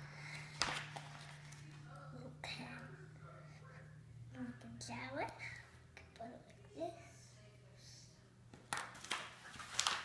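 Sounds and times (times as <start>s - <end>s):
paper packaging rustling: 0.4s - 1.8s, 8.8s - 10.0s.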